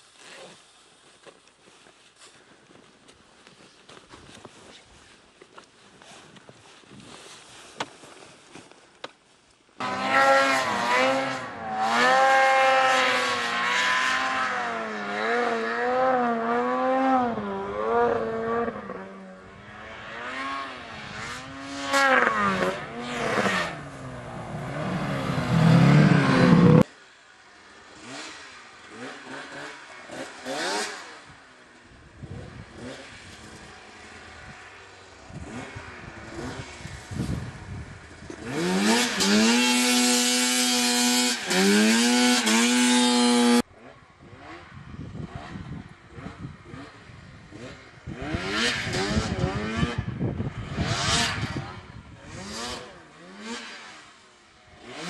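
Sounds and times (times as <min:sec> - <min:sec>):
snowmobile engines revving: 0:09.8 - 0:26.9, 0:27.5 - 0:55.0.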